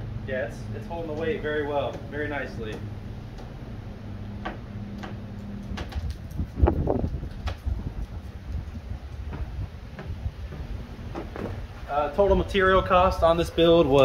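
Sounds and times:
footsteps on plywood: 4.4s - 11.9s.

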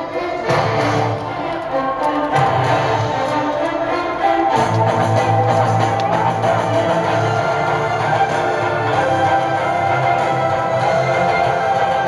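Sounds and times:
music with held melodic tones: 0.0s - 12.0s.

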